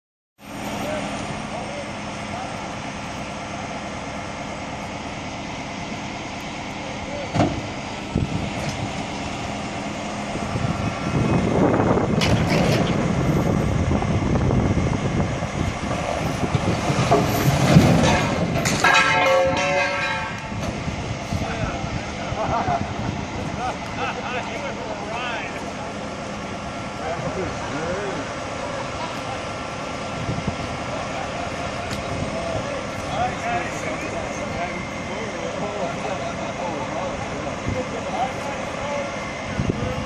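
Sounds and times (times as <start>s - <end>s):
diesel tow truck engines: 0.4s - 40.0s.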